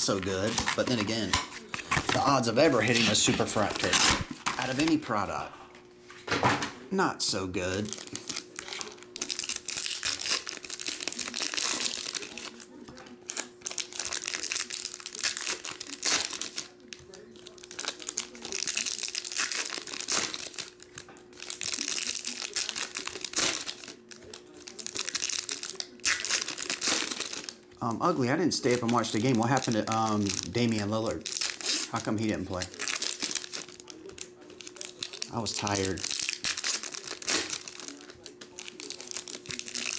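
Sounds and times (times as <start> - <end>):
foil wrappers crinkling and tearing: 0.0 - 5.5, 7.6 - 39.9.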